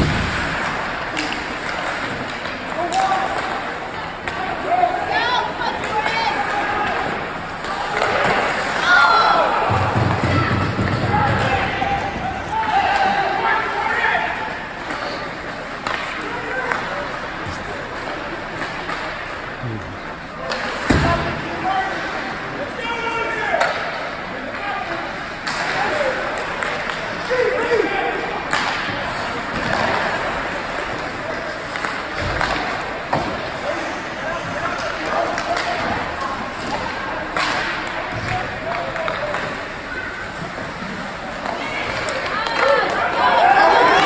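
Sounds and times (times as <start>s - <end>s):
hockey sticks and puck knocking: 0.0s - 4.7s, 14.8s - 19.4s, 28.5s - 33.6s, 34.6s - 43.2s.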